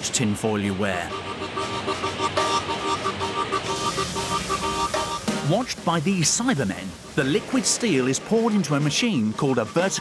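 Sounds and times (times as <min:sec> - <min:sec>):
noisy hiss: 0:00.0 - 0:10.0
electronic background music: 0:01.0 - 0:10.0.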